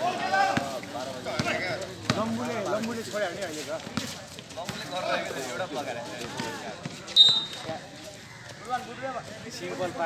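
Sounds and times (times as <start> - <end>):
players' voices: 0.0 - 10.0
basketball bouncing on concrete: 1.3 - 2.3
sharp high-pitched squeak: 7.2 - 7.6.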